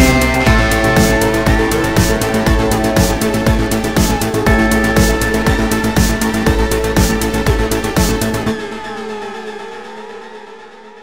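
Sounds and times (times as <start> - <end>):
gliding synthesizer tones: 0.0 - 10.5.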